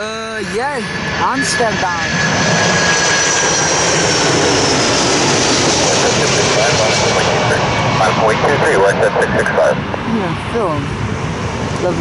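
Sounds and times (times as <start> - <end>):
jet airliner passing overhead: 0.0 - 12.0.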